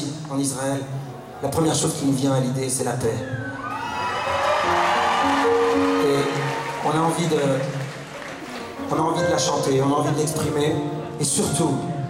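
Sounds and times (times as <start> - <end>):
audience cheering and whooping: 3.4 - 8.6.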